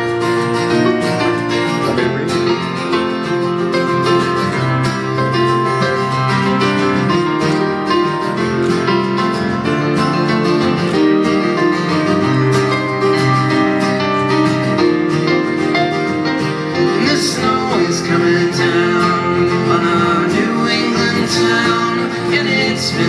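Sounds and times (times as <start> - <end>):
acoustic guitar strumming: 0.0 - 23.0
keyboard backing: 0.0 - 23.0.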